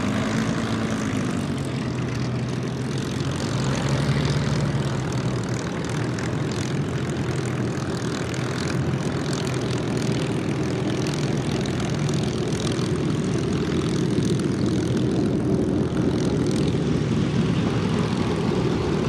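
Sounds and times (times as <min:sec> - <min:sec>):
propeller plane engines droning: 0:00.0 - 0:19.0.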